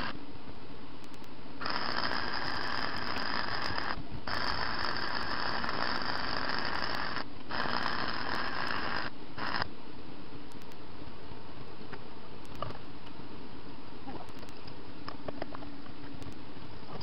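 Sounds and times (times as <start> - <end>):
arc welding crackle: 1.1 - 9.7.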